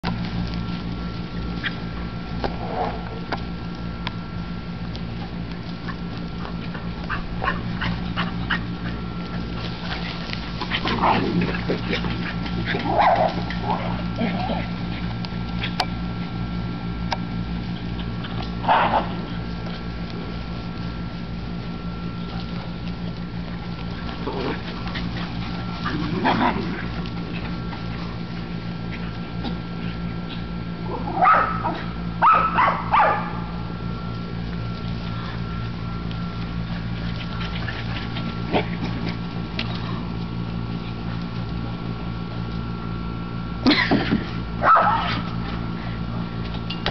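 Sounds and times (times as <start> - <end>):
steady low hum: 0.0 - 46.9
dogs barking: 7.0 - 9.1, 10.6 - 14.8, 18.6 - 19.3, 30.9 - 33.6, 44.6 - 45.3
dogs yipping: 31.2 - 33.4, 44.6 - 45.2.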